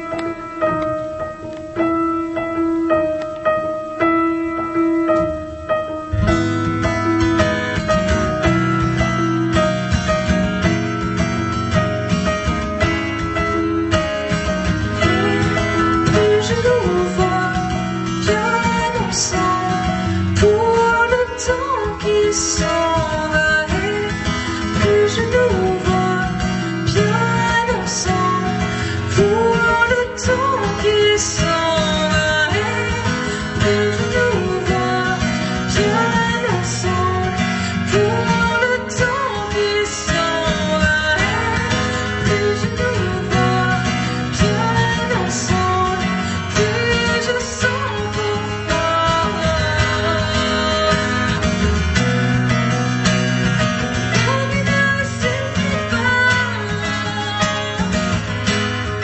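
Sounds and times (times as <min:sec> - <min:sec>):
piano accompaniment: 0:00.0 - 0:59.0
strummed acoustic guitar: 0:05.2 - 0:59.0
woman singing: 0:12.0 - 0:52.6, 0:53.8 - 0:59.0.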